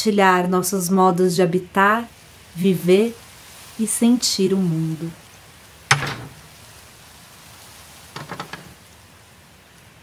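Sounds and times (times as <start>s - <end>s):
steady hiss: 2.1s - 10.0s
knocking on wooden gate: 5.9s - 6.5s, 8.2s - 8.8s.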